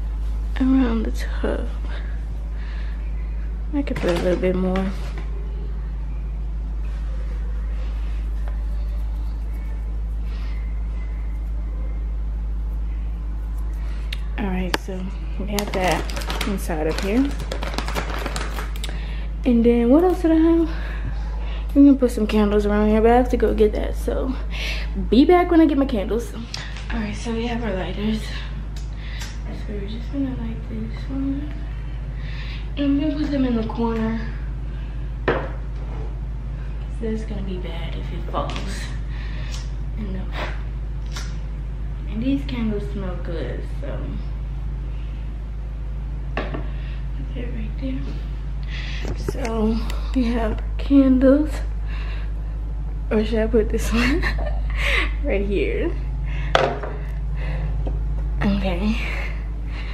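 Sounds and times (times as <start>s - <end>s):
faint hum: 0.0s - 59.9s
steady low rumble: 5.3s - 17.6s, 18.7s - 59.9s.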